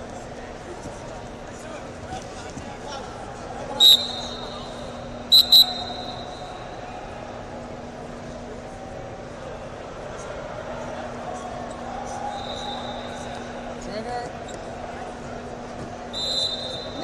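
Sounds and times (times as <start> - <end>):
hall chatter: 0.0 - 17.0
referee whistle blasts: 3.8 - 6.6, 12.3 - 13.4, 16.1 - 17.0.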